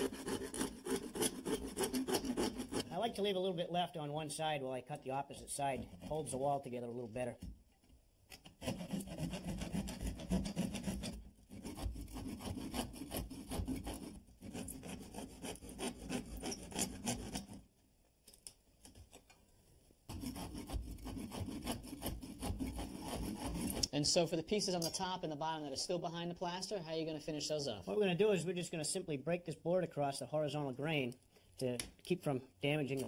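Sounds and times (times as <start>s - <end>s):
hand saw cutting wood lath: 0.0s - 3.2s, 5.5s - 6.8s, 8.3s - 17.6s, 20.1s - 24.2s.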